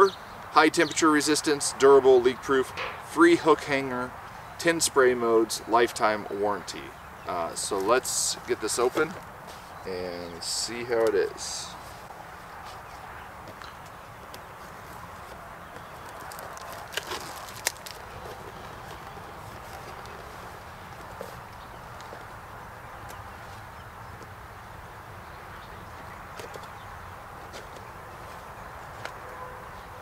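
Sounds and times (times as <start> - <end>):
faint outdoor background noise: 0.0 - 30.0.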